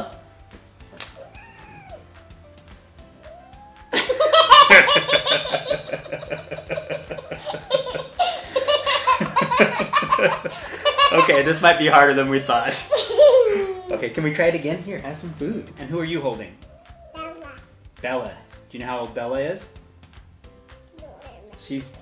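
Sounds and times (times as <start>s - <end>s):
little girl laughing: 3.9s - 14.0s
man laughing: 3.9s - 14.1s.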